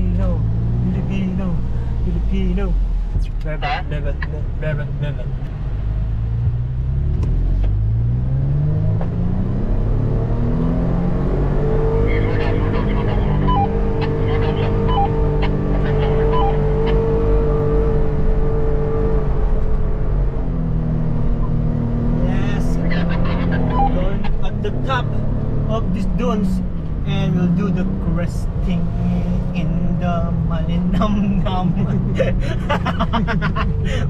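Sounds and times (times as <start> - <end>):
car engine accelerating: 0.0 - 34.0.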